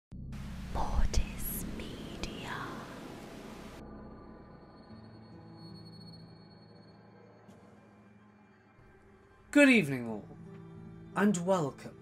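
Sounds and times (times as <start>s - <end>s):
low hum: 0.1s - 7.4s
hissing static: 0.4s - 3.8s
whispered voice: 0.7s - 3.0s.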